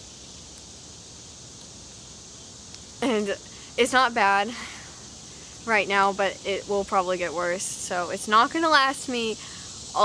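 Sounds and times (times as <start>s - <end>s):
faint high hiss: 0.0s - 10.0s
outdoor background noise: 0.0s - 10.0s.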